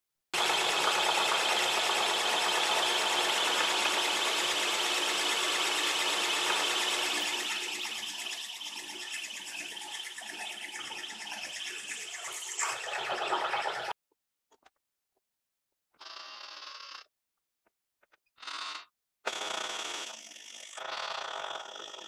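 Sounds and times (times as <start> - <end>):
drill cutting steel with whine: 0.4 - 13.9, 19.3 - 22.0.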